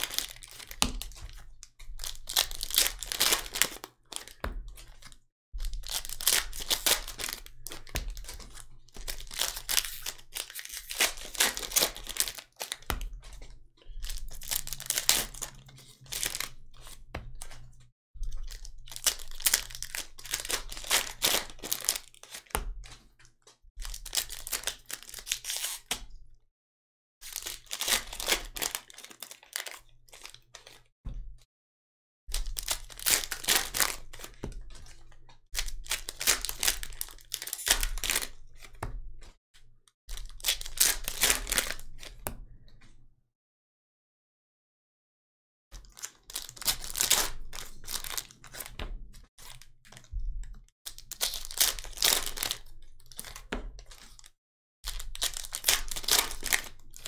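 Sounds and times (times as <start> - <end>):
foil wrappers crinkling and tearing: 0.0 - 17.6, 18.4 - 23.1, 23.8 - 26.0, 27.2 - 30.9, 32.3 - 38.8, 40.1 - 42.2, 45.8 - 48.8, 49.4 - 50.1, 50.9 - 57.0.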